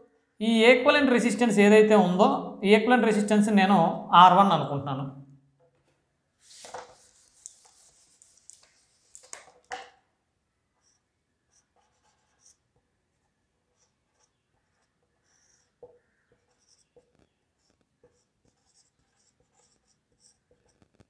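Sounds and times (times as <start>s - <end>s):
marker squeaking on whiteboard: 10.8s - 21.0s.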